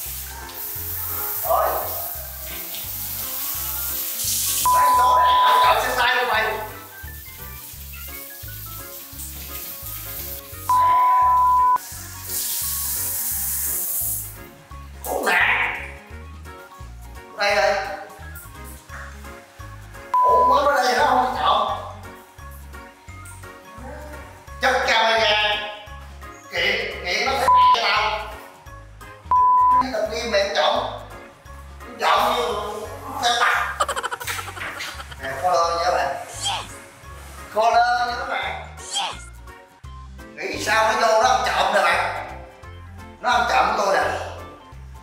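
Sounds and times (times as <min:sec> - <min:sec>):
shower head spraying water: 0:00.0 - 0:14.4, 0:33.7 - 0:36.5
background music with steady beat: 0:00.0 - 0:38.0, 0:38.9 - 0:45.0
censor bleep: 0:04.7 - 0:05.7, 0:10.7 - 0:11.8, 0:20.2 - 0:20.6, 0:27.5 - 0:27.8, 0:29.3 - 0:29.8
man's voice: 0:04.7 - 0:06.7, 0:32.0 - 0:36.7.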